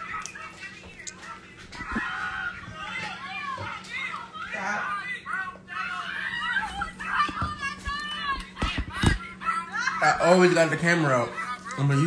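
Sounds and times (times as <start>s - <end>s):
high-pitched voices chattering: 0.0s - 12.0s.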